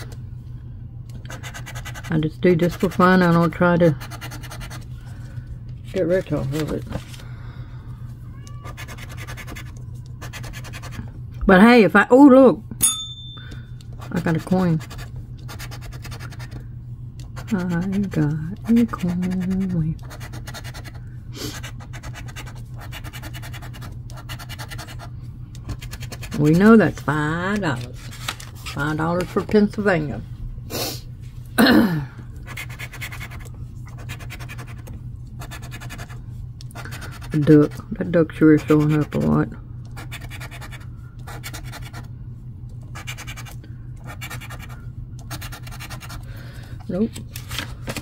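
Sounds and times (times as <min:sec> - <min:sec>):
steady low hum: 0:00.0 - 0:48.0
coin scratching paper ticket: 0:01.3 - 0:04.8, 0:08.6 - 0:11.0, 0:14.0 - 0:16.6, 0:17.4 - 0:21.0, 0:21.6 - 0:25.1, 0:25.7 - 0:26.8, 0:32.5 - 0:36.2, 0:38.4 - 0:39.4, 0:40.0 - 0:42.1, 0:43.0 - 0:46.2.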